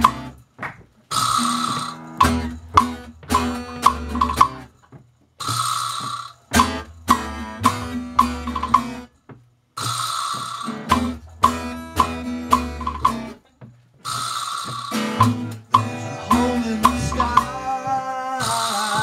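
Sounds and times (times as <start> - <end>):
guitar strumming chords: 0.0 - 0.5, 1.1 - 4.8, 5.4 - 9.1, 9.8 - 13.4, 14.1 - 19.0
drum kit: 0.0 - 19.0
double bass: 1.3 - 4.7, 6.6 - 9.1, 10.9 - 13.4, 15.2 - 17.7.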